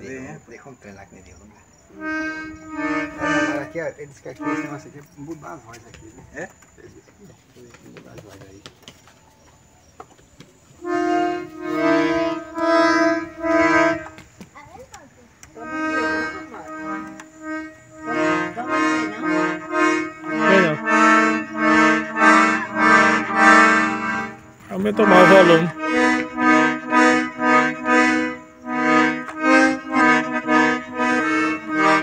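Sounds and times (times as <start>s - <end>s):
accordion pulsed chords: 0.0s - 6.4s, 10.6s - 32.0s.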